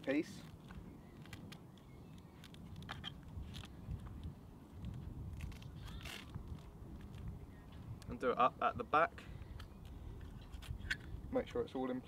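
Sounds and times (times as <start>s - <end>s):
belt velcro crackling and clicks: 0.4s - 3.8s, 4.8s - 7.3s.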